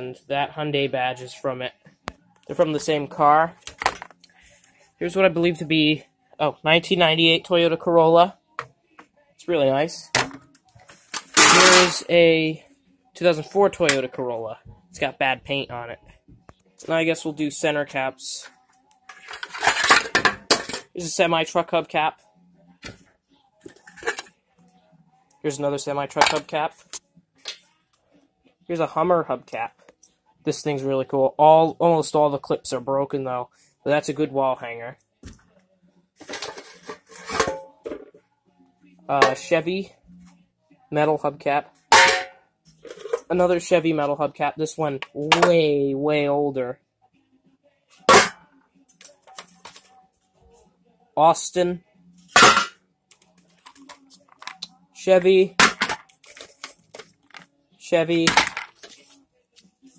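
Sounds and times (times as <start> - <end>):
metal hubcaps clinking and scraping: 11.1 - 12.1, 36.2 - 37.7, 41.9 - 43.3
metal hubcap clatter: 41.9 - 43.3.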